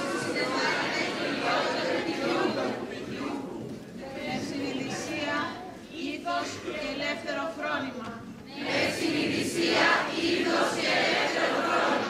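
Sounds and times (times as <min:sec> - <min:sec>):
crowd reciting in unison: 0:00.0 - 0:07.4, 0:08.5 - 0:12.0.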